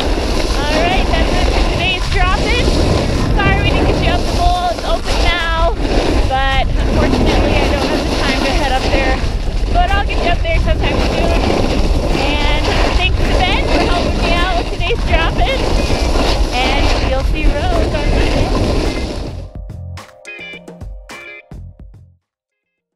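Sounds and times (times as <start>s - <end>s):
woman's voice: 0.0s - 15.8s, 16.5s - 18.7s
wind buffeting microphone: 0.0s - 19.5s.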